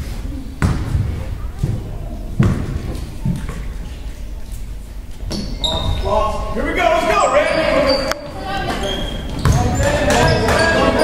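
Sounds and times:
basketball bouncing on wood floor: 0:00.6 - 0:03.5, 0:09.3 - 0:10.8.

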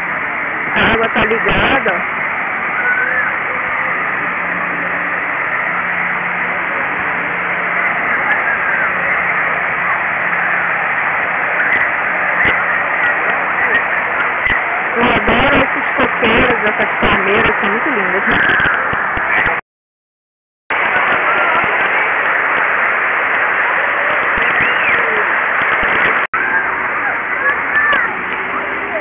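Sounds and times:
water pouring down: 0:00.0 - 0:15.0, 0:20.8 - 0:29.0
person speaking: 0:15.0 - 0:18.4.

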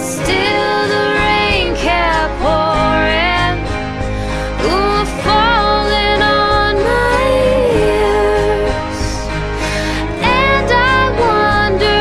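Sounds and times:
instrumental backing: 0:00.0 - 0:12.0.

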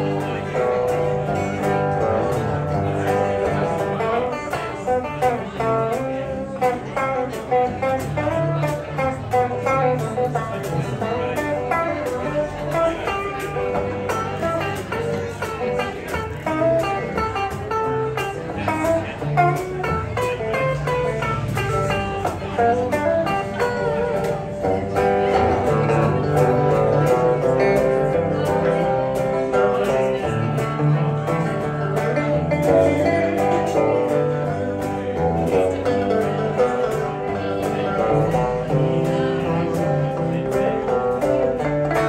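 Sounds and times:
electric guitars playing: 0:00.0 - 0:42.0.

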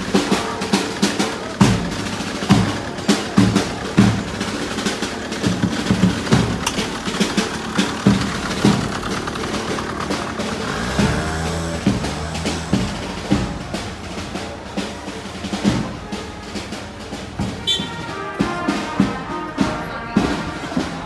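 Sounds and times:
car engine passing: 0:00.0 - 0:18.9
snare rolls: 0:00.0 - 0:19.7.

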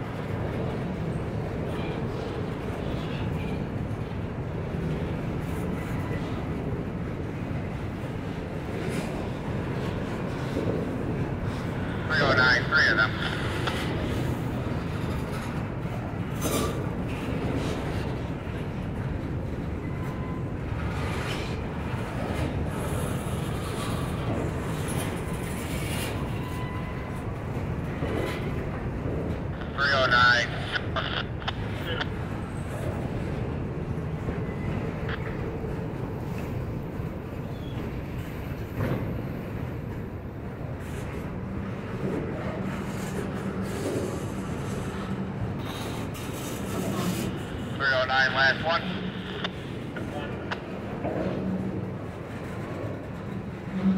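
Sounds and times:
freight train wheels rumbling: 0:00.0 - 0:53.9.

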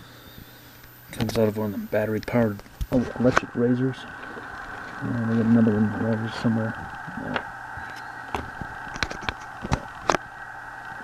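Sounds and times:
high-pitched hum: 0:00.0 - 0:11.0.

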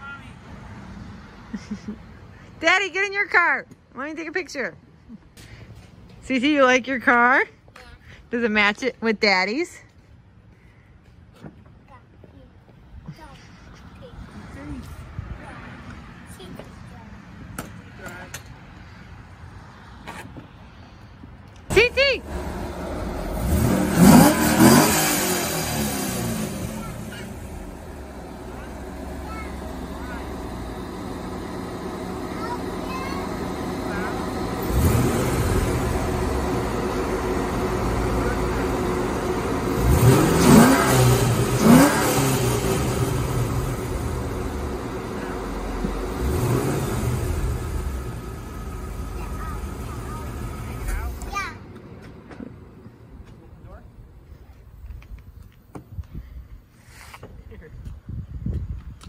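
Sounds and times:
car engine idling and revving: 0:13.1 - 0:55.8
car engine shutting off: 0:21.7 - 0:53.7
car engine starting: 0:21.7 - 0:55.0.

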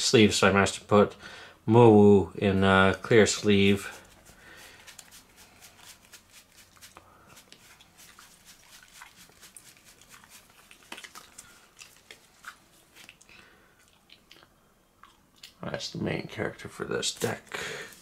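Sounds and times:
sleeved cards crackling: 0:03.2 - 0:13.2.

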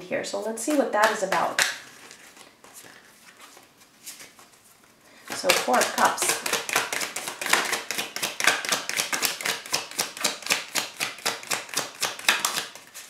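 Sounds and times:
cards being shuffled: 0:00.5 - 0:13.0.

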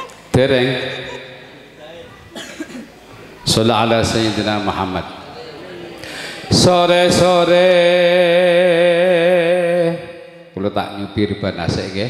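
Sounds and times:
man coughing into microphone: 0:02.3 - 0:03.0.

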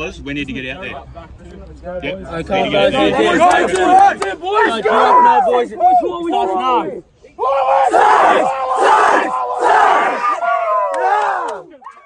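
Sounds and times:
young men shouting together: 0:02.8 - 0:12.0
long drawn-out yell: 0:03.4 - 0:12.0.

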